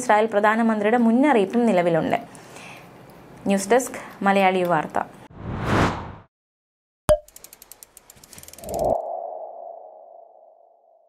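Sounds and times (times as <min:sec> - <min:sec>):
whoosh: 0:05.3 - 0:06.3
rapid ticks: 0:07.3 - 0:08.8.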